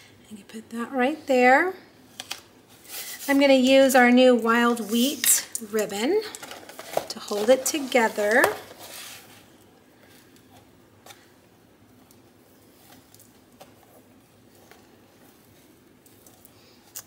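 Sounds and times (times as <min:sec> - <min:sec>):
ribbon and paper rustling: 0:06.3 - 0:09.4.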